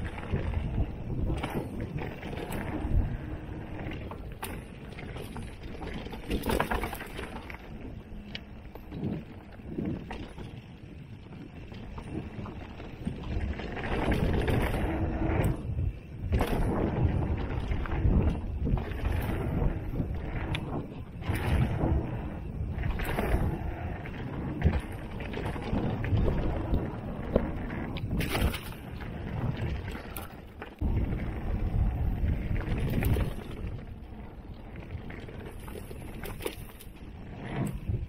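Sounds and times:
bike knocks and rattles: 0.0 - 38.0
tyres on dirt: 0.0 - 38.0
wind rushing over microphone: 0.0 - 38.0.

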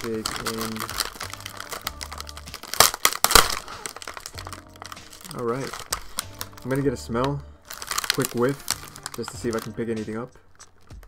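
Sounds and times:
loud plastic crackles: 0.0 - 11.0
plastic wrapper crinkling: 0.0 - 11.0.

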